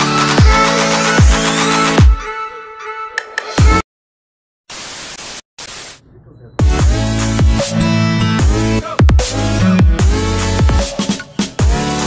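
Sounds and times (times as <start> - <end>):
white noise bursts: 4.7 - 6.0.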